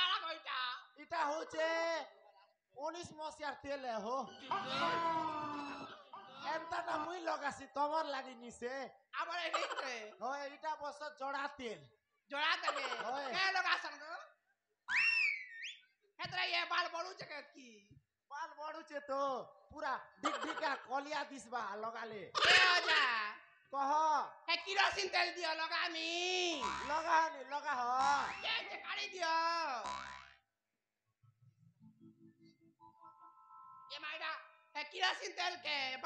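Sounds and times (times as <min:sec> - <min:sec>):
comic boing: 0:26.6 - 0:27.2, 0:28.0 - 0:28.5, 0:29.8 - 0:30.4.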